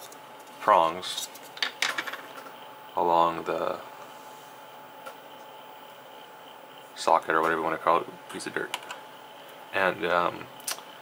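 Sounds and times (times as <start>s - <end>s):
faint electrical whine: 0.0s - 11.0s.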